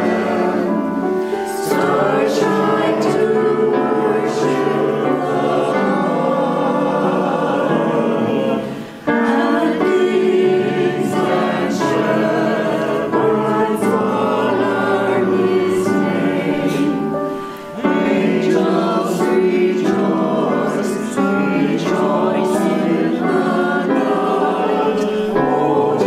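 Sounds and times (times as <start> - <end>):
choir singing in parts: 0.0 - 26.0.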